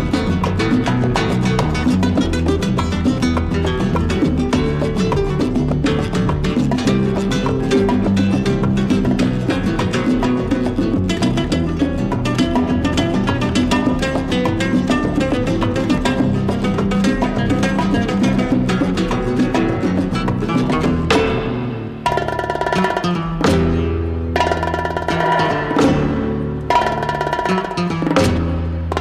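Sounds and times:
bongos playing rhythm: 0.0s - 29.0s
fast flamenco guitar: 0.0s - 29.0s.

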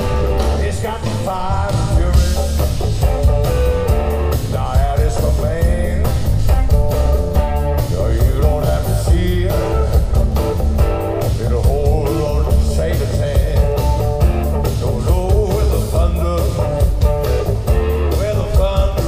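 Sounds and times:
electric guitar: 0.0s - 19.0s
live band through speakers: 0.0s - 19.0s.

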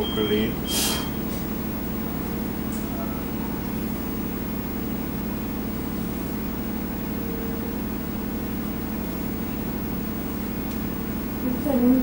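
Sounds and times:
faint steady tone: 0.0s - 1.3s
machinery humming: 0.0s - 12.0s.

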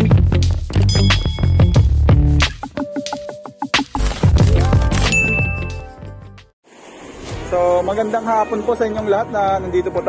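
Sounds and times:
intro music: 0.0s - 6.5s
bright ding: 0.8s - 1.9s, 5.1s - 5.8s.

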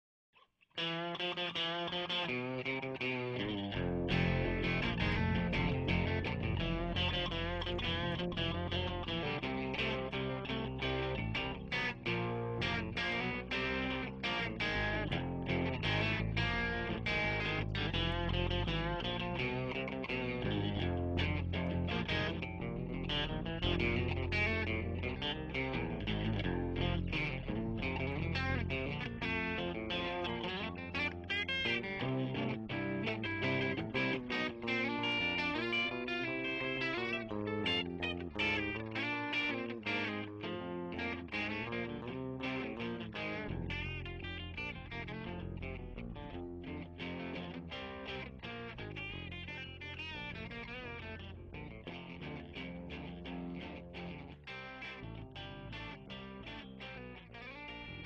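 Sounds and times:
guitar-led instrumental music: 0.7s - 58.0s.

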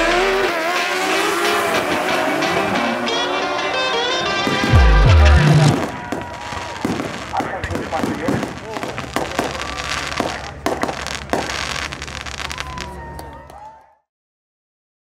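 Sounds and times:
crowd voices: 0.0s - 14.1s
fireworks popping and banging: 4.4s - 13.0s.

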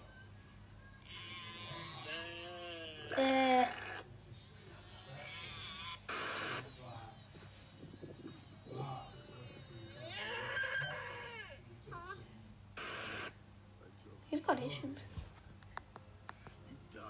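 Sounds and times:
television static hiss: 0.0s - 17.0s
sheep bleating: 10.0s - 11.6s
deer wavering call: 10.1s - 11.6s.

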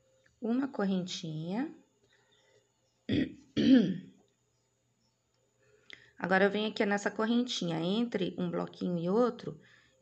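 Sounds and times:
woman clearing her throat: 3.1s - 4.1s.

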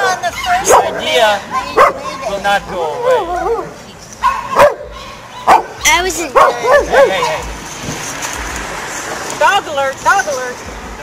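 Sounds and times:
dog barking: 0.6s - 2.2s, 3.0s - 7.4s.

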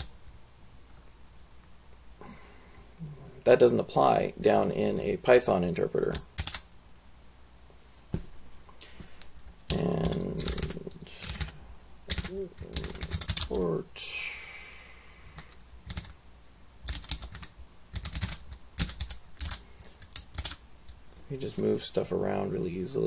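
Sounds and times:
typing on computer keyboard: 6.1s - 6.6s, 9.7s - 13.5s, 15.4s - 16.2s, 16.8s - 20.6s.

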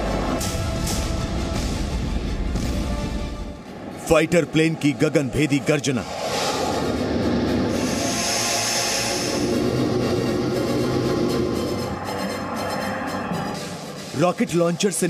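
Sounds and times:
fighter jet engines roaring: 3.6s - 14.2s.

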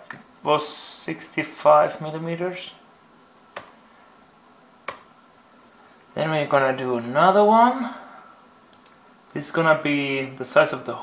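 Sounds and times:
laptop keys clicking: 3.6s - 3.8s, 4.9s - 5.1s, 8.7s - 9.0s.

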